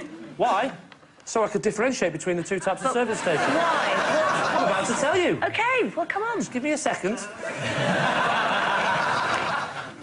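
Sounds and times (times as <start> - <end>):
audience laughing: 2.7 - 5.4, 7.3 - 10.0.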